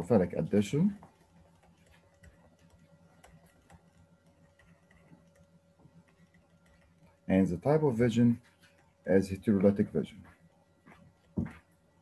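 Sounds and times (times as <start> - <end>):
low steady hum: 0.0 - 12.0
stylus tapping on pen tablet: 11.2 - 11.6.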